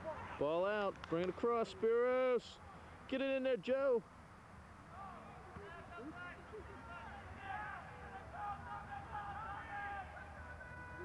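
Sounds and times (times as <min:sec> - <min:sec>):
distant people talking and calling: 0:00.0 - 0:11.0
commentary: 0:05.0 - 0:11.0.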